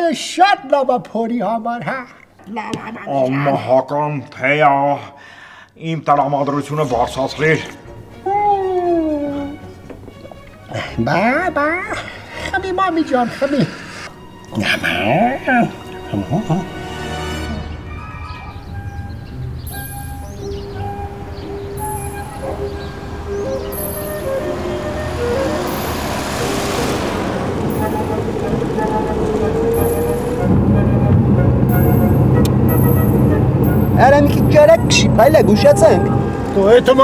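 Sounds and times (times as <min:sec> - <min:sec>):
background music: 0:06.0 - 0:37.0
car driving past: 0:17.4 - 0:37.0.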